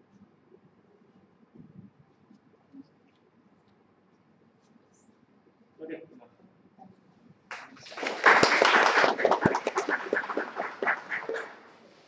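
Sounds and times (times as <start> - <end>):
audience applause: 7.5 - 11.7.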